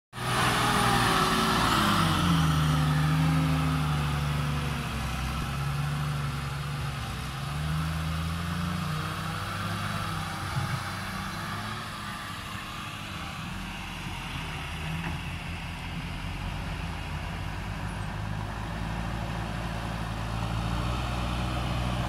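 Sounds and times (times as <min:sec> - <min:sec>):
dump truck diesel engine: 0:00.1 - 0:22.0.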